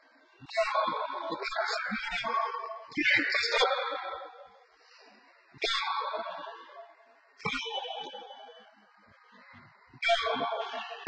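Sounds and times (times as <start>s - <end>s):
person shouting in echoing hall: 0.4s - 4.4s, 5.6s - 6.6s, 10.0s - 11.0s.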